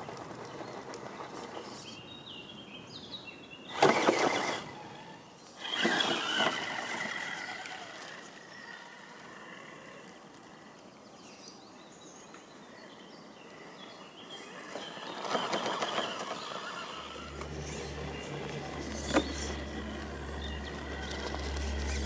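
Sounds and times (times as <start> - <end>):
tires scrabbling over grit: 3.8 - 8.5, 14.7 - 22.0
electric motor whirring: 16.0 - 22.0
low steady hum: 17.0 - 22.0.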